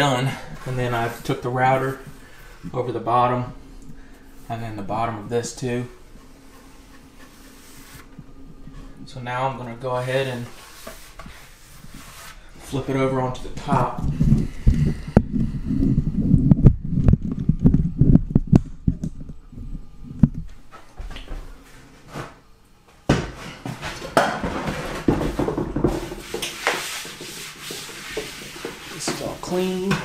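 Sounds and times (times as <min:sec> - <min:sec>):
scraping on wood: 0:06.0 - 0:09.0, 0:10.1 - 0:12.8, 0:23.1 - 0:30.0.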